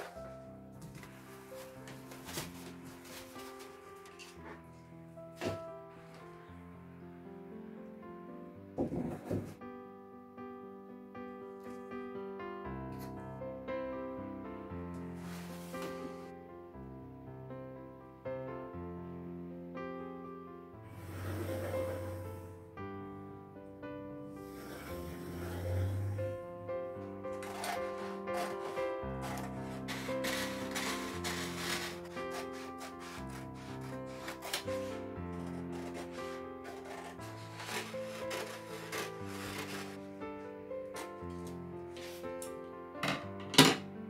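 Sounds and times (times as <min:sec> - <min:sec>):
paper rustling: 0:00.0 - 0:04.7, 0:15.2 - 0:16.3, 0:27.2 - 0:40.2, 0:40.9 - 0:42.4
light background music: 0:00.0 - 0:44.0
scissors cutting paper: 0:27.3 - 0:40.2.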